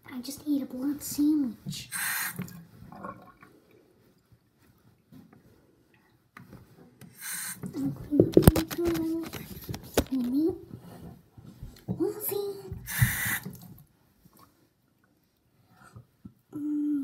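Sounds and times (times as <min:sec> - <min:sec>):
short hiss: 0:01.9 - 0:02.5, 0:07.2 - 0:07.6, 0:12.9 - 0:13.5
camera handling knocks and rubbing: 0:08.2 - 0:10.3
child vocal sound: 0:16.5 - 0:17.0.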